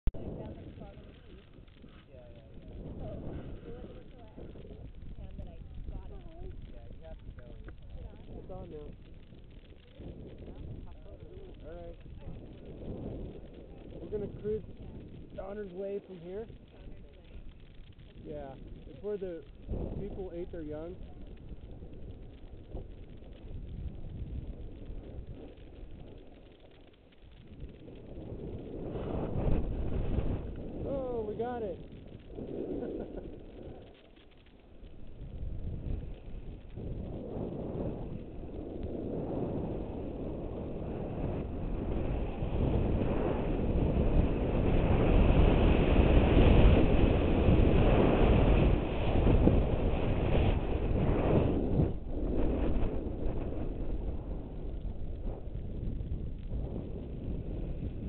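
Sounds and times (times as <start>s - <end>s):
wind buffeting microphone: 0.1s - 58.0s
muffled voices talking: 0.2s - 9.1s, 9.7s - 21.9s, 30.8s - 32.0s
snowboard scraping over snow: 27.8s - 34.0s, 34.9s - 58.0s.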